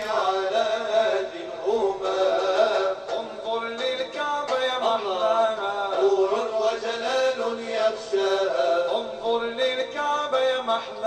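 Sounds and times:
person singing a devotional chant: 0:00.0 - 0:11.0.

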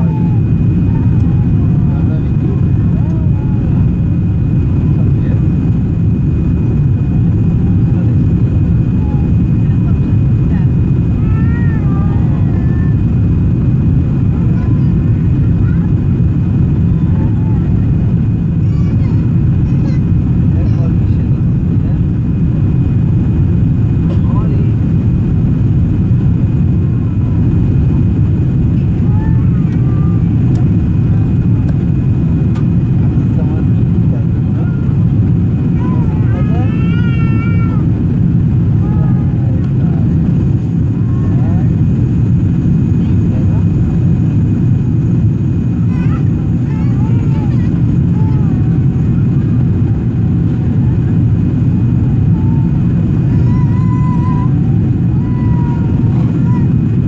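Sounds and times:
faint voices: 0:00.0 - 0:57.0
jet cabin engine rumble: 0:00.0 - 0:57.0.

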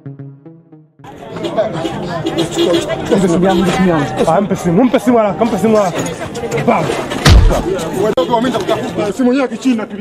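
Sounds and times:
people talking: 0:01.1 - 0:10.0
steady background noise: 0:01.1 - 0:10.0.

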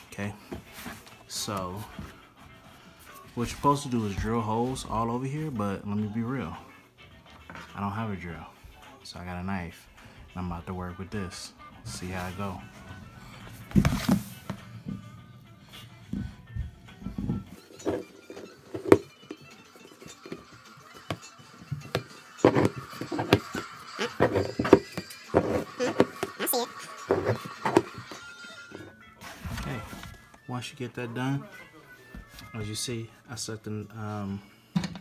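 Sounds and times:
background music: 0:00.0 - 0:35.0.

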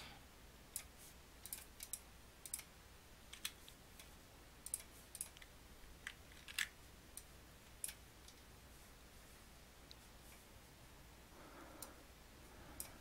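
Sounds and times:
low steady hum: 0:00.0 - 0:13.0
mouse and keyboard clicks: 0:00.8 - 0:02.7.

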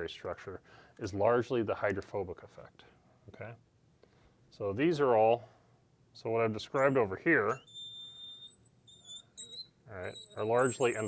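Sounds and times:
marker squeaking on glass: 0:06.8 - 0:11.0.

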